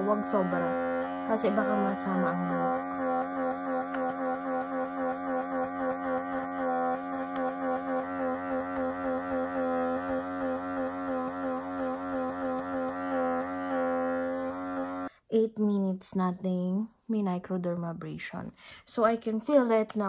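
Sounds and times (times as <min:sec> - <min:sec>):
pulsing suction motor hum: 0:00.0 - 0:15.1.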